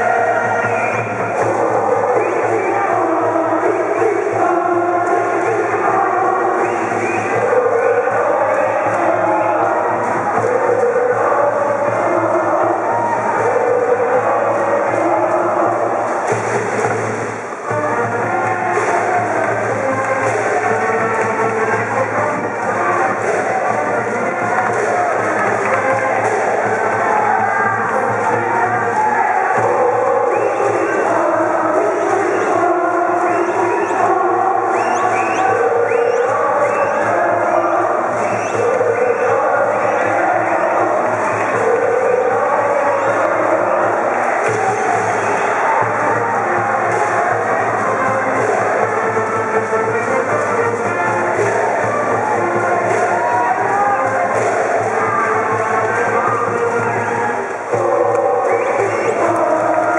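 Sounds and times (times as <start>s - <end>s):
brass band playing cheer song: 0.0s - 59.9s
crowd singing along: 0.0s - 59.9s.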